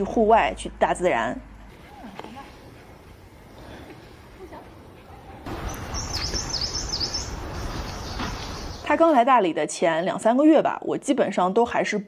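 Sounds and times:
outdoor background hiss: 0:00.0 - 0:10.6
songbird whistling: 0:05.6 - 0:08.9.

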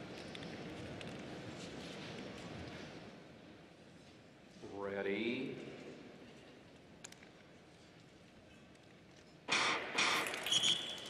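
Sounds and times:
starting gun shots: 0:09.5 - 0:11.0.

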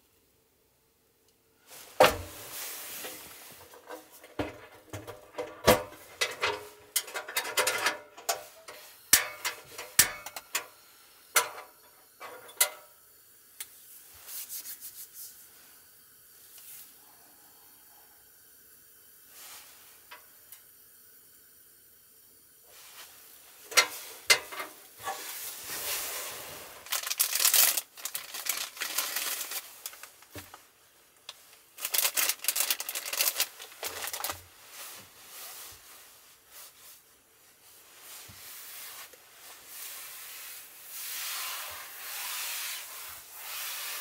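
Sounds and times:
paper crinkling and tearing: 0:26.8 - 0:30.6, 0:31.5 - 0:34.4.

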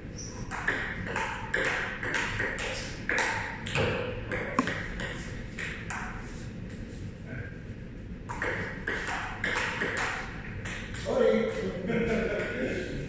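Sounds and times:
ping-pong ball knocking back and forth: 0:00.4 - 0:06.1, 0:08.3 - 0:11.1.

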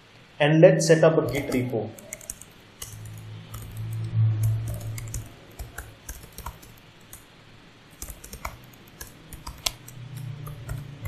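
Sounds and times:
computer keyboard key clicks: 0:01.3 - 0:07.2, 0:07.9 - 0:11.0.

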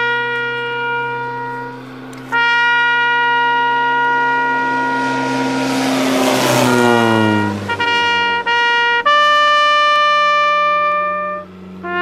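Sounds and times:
brass band playing: 0:00.0 - 0:12.0
propeller aircraft flying overhead: 0:00.0 - 0:12.0.

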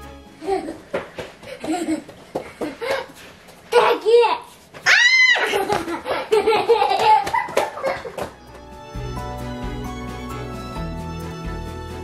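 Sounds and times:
child squealing: 0:04.8 - 0:05.6.

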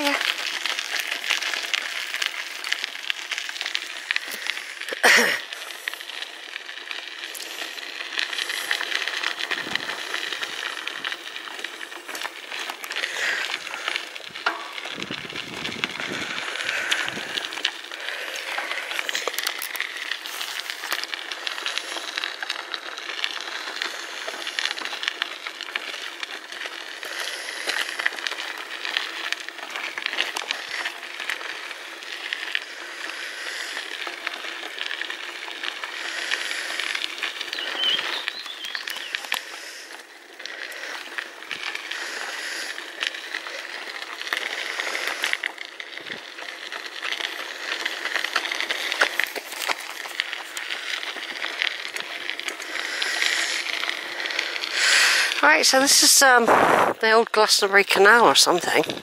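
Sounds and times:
bicycle tyres crackling on gravel: 0:00.0 - 0:59.0
bike rattling: 0:00.0 - 0:59.0.

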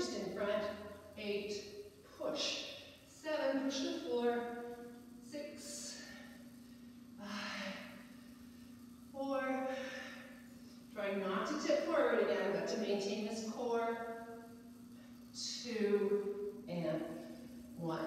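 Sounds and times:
woman speaking: 0:00.0 - 0:04.5, 0:05.3 - 0:06.1, 0:09.2 - 0:10.0, 0:11.0 - 0:14.0, 0:15.4 - 0:17.1, 0:17.8 - 0:18.0
steady low hum: 0:00.0 - 0:18.0.

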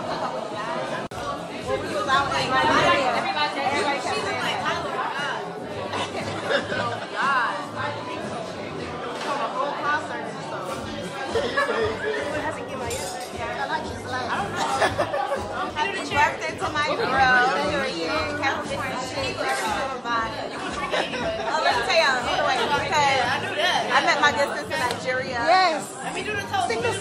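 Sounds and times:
indistinct chatter: 0:00.0 - 0:27.0.

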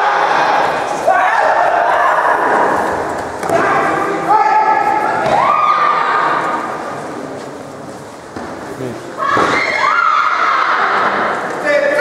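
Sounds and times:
background murmur: 0:00.0 - 0:12.0.

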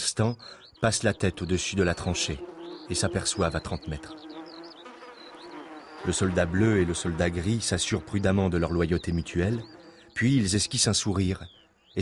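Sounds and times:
insect buzzing: 0:00.4 - 0:12.0.

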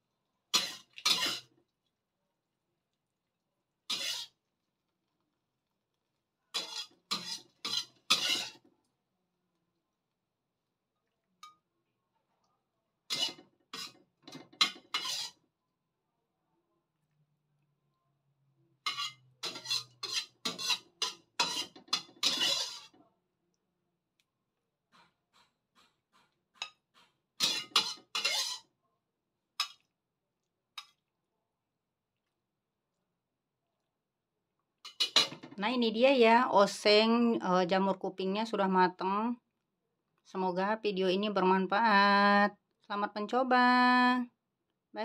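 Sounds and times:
utensil scraping metal wok: 0:00.5 - 0:01.5, 0:03.9 - 0:04.4, 0:06.5 - 0:08.7, 0:13.1 - 0:15.4, 0:18.8 - 0:23.0, 0:25.0 - 0:28.7, 0:29.6 - 0:29.8, 0:34.8 - 0:35.5.

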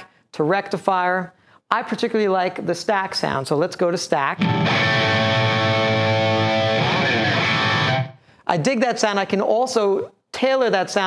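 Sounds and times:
distorted electric guitar chord: 0:04.4 - 0:08.2.

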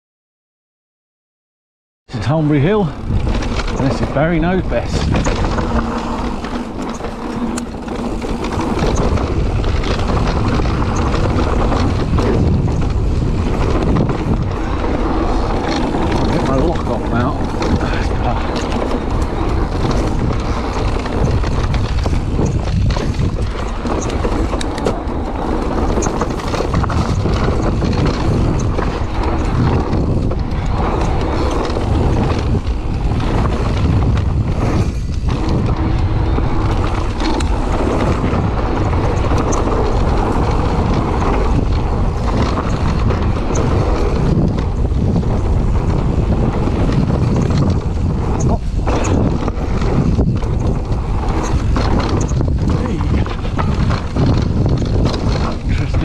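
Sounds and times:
bike rattling: 0:02.1 - 0:56.0
tyres rolling over dirt: 0:02.1 - 0:56.0
wind buffeting microphone: 0:02.1 - 0:56.0.

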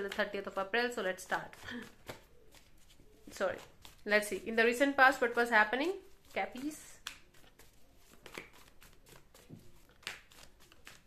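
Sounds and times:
cards being shuffled: 0:00.0 - 0:05.5, 0:06.1 - 0:11.0.

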